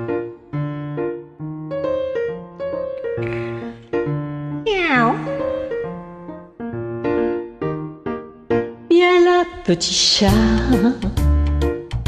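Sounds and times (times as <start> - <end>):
piano music: 0.0 - 12.0
cat meowing: 4.7 - 5.5.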